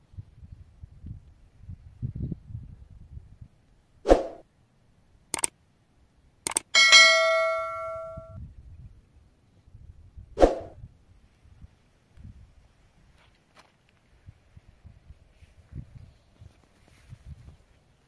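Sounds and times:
clicks: 6.5 - 8.3
bell-like notification ding: 6.8 - 8.4.

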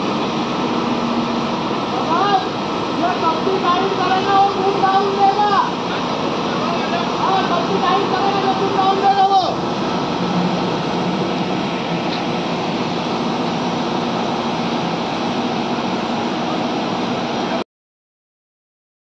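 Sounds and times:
diesel engine running: 0.0 - 17.6.

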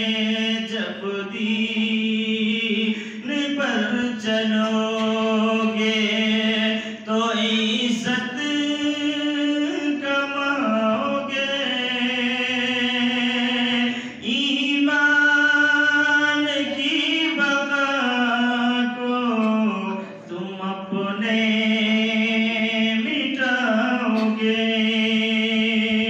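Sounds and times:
man singing unaccompanied: 0.0 - 26.0.

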